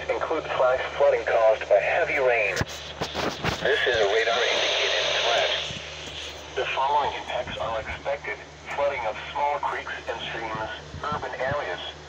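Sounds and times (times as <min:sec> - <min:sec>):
radio hiss: 0:00.0 - 0:12.0
voice over small radio speaker: 0:00.0 - 0:12.0.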